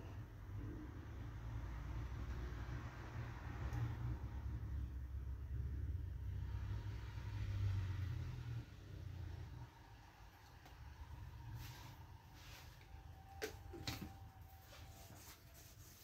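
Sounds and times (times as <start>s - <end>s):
low steady rumble: 0.0s - 13.4s
palette knife scraping paint: 14.8s - 16.0s.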